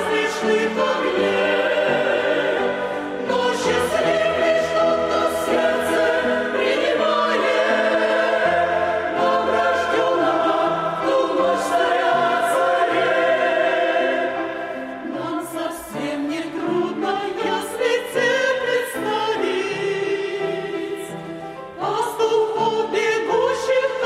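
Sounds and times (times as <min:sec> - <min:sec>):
mixed choir singing a hymn: 0:00.0 - 0:24.0.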